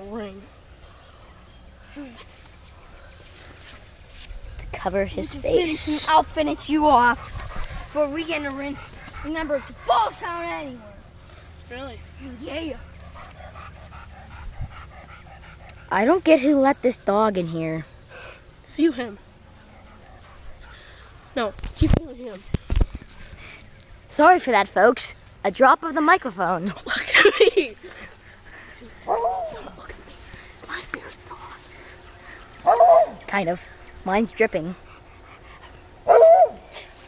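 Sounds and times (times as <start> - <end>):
dog panting fast: 5.0 - 10.8, 11.8 - 17.0, 19.6 - 21.1, 27.6 - 35.8
dog barking and whining: 29.1 - 29.7, 32.6 - 33.3, 36.0 - 36.7.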